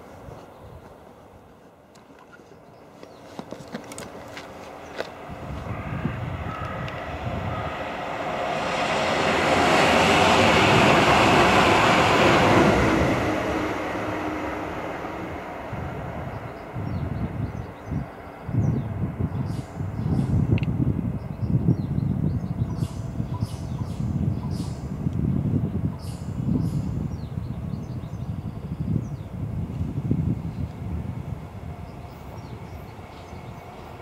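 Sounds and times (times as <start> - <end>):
train passing: 2.8 - 27.2, 28.4 - 34.0.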